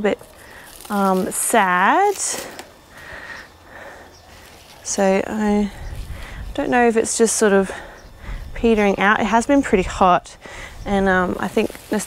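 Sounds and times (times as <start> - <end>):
soft breath noise: 2.3 - 6.8, 7.4 - 8.8, 10.3 - 11.0.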